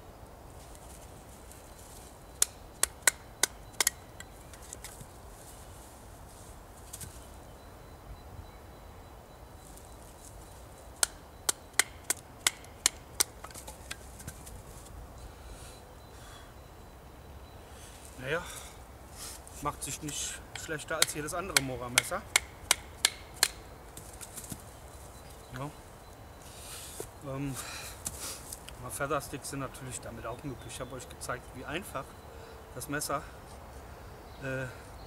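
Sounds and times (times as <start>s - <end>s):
knife spine struck through wood: 20.1s - 23.6s.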